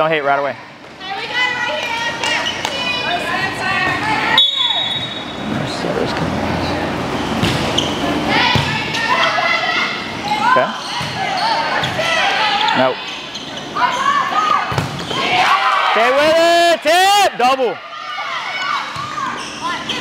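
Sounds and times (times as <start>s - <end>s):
volleyball hits: 7.2s - 9.4s, 14.4s - 15.5s.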